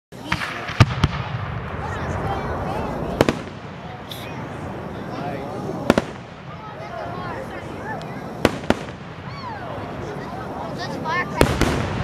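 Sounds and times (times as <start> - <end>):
firework shells bursting: 5.8 - 6.6, 7.9 - 10.1.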